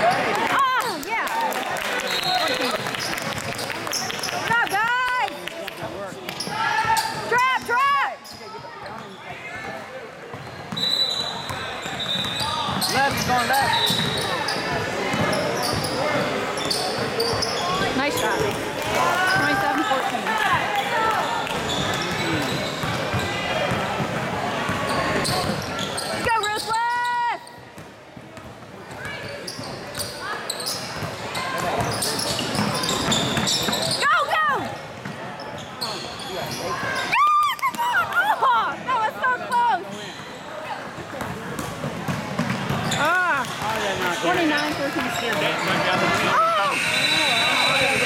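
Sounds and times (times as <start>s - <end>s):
echoing chatter and calls: 0.0s - 27.5s, 28.2s - 48.0s.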